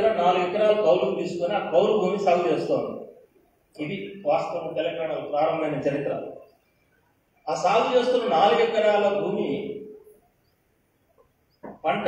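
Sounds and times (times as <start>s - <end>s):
man speaking into a microphone: 0.0s - 3.1s, 3.8s - 6.4s, 7.5s - 9.8s.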